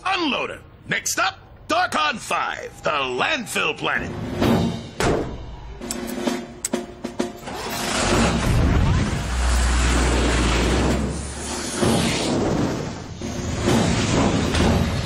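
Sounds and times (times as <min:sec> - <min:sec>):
rushing spaceship engine rumble: 0:07.4 - 0:15.0.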